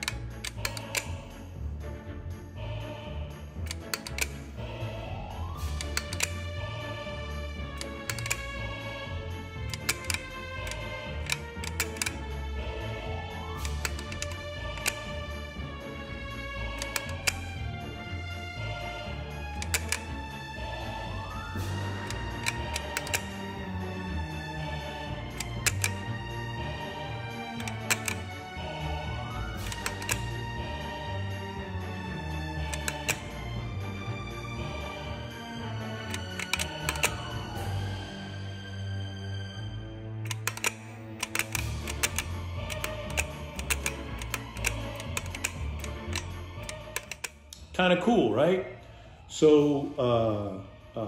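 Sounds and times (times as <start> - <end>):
toy trigger clicks: 0.0 - 1.3, 3.7 - 4.8, 5.5 - 6.6, 7.7 - 8.8, 9.7 - 12.4, 13.5 - 15.4, 16.7 - 17.6, 19.5 - 23.7, 25.0 - 26.2, 26.8 - 30.4, 32.6 - 33.5, 35.9 - 37.8, 40.3 - 47.6
background music: 0.0 - 51.0.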